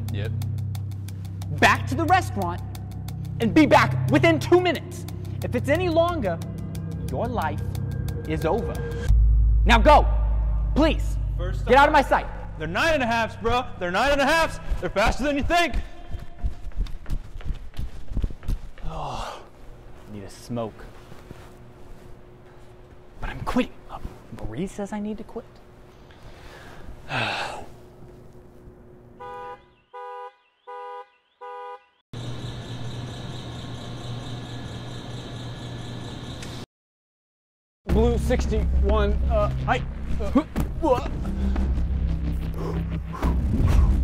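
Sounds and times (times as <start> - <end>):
running footsteps on concrete: 13.4 - 19.0
car horn honks: 29.2 - 32.0
loud steady droning hum: 32.2 - 36.6.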